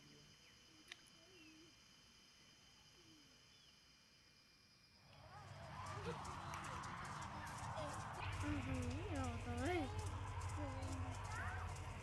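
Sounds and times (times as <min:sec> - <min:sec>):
background murmur: 0:05.1 - 0:12.0
birds chirping: 0:05.1 - 0:12.0.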